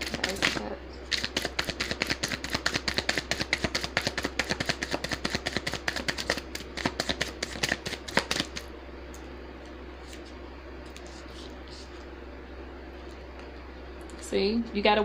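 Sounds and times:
cards being shuffled: 0.0s - 8.7s.

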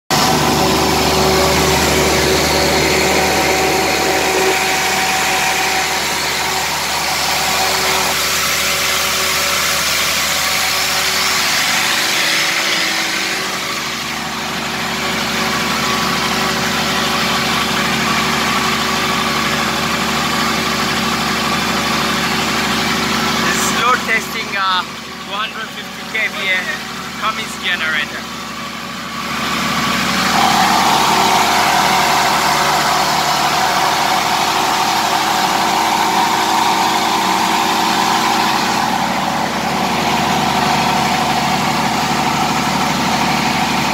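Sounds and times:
diesel generator engine droning: 0.1s - 43.9s.

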